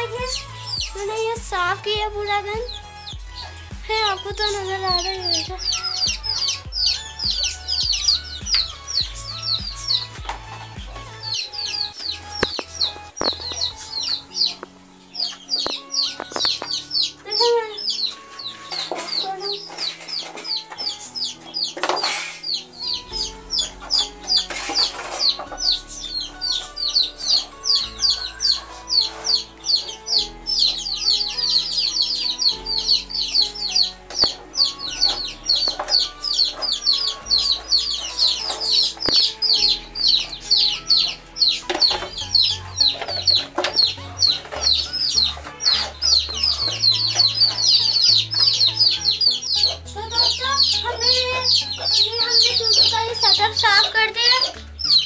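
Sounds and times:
background music: 0:00.0 - 0:55.0
chicks peeping: 0:00.0 - 0:55.0.

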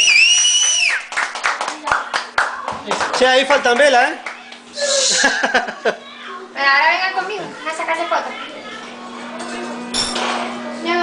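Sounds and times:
group clapping unevenly: 0:00.0 - 0:04.7
voices talking: 0:02.6 - 0:11.0.

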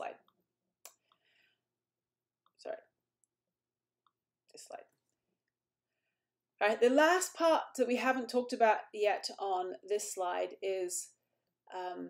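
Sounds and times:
woman speaking: 0:00.0 - 0:00.2, 0:06.6 - 0:11.1, 0:11.7 - 0:12.0.

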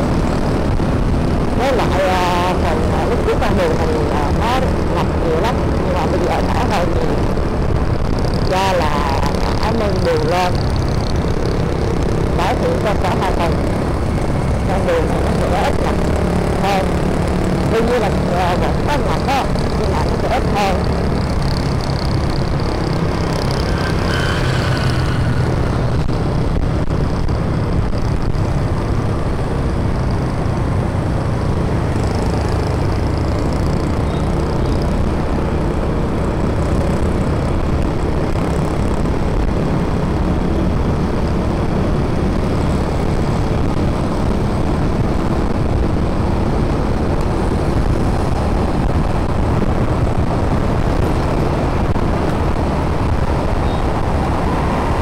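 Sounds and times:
motorbike engine: 0:00.0 - 0:55.0
scooters and vehicles passing: 0:00.0 - 0:55.0
wind rushing over microphone: 0:00.0 - 0:55.0.

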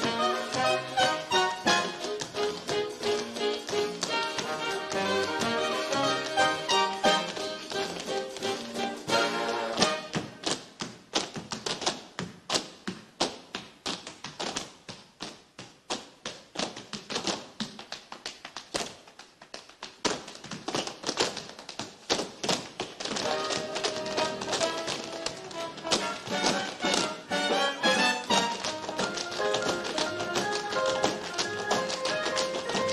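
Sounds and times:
band playing: 0:00.0 - 0:10.1, 0:23.2 - 0:32.9
tap shoes on stage floor: 0:00.0 - 0:32.9.

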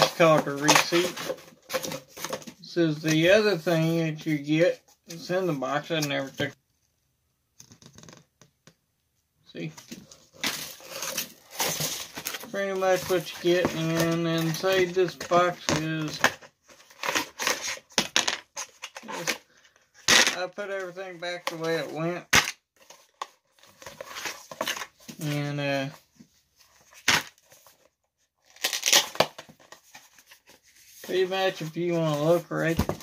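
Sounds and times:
paperboard rustling and crinkling: 0:00.0 - 0:05.4, 0:09.7 - 0:19.7, 0:28.6 - 0:33.0
cardboard box rustling: 0:09.8 - 0:15.6.

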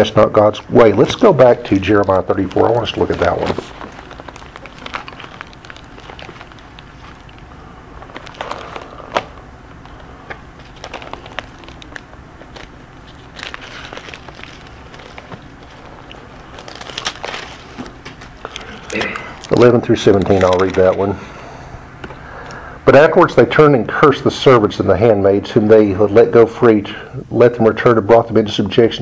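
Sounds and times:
paper pages rustling: 0:00.8 - 0:21.0.

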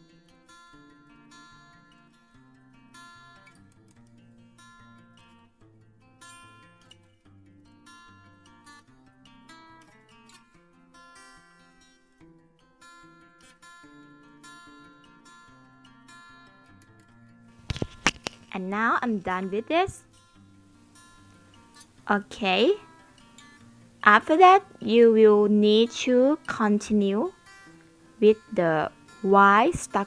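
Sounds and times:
plucked acoustic guitar music: 0:00.0 - 0:30.0.

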